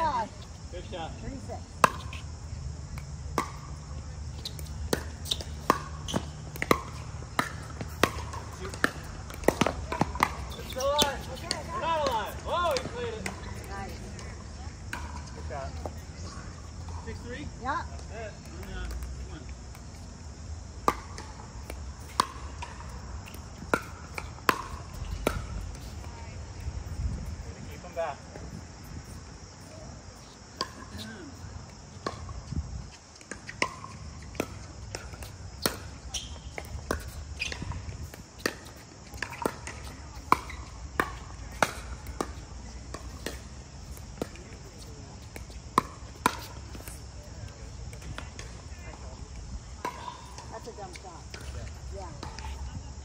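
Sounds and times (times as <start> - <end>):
ball bouncing on hard court: 1.8 - 2.2, 3.0 - 3.8, 4.4 - 14.3, 20.8 - 26.2, 33.2 - 44.4, 45.3 - 47.0.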